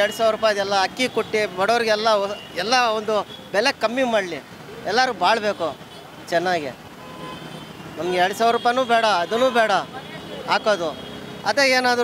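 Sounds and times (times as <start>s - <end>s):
man talking: 0.0s - 6.8s, 8.0s - 12.0s
road traffic noise: 0.0s - 12.0s.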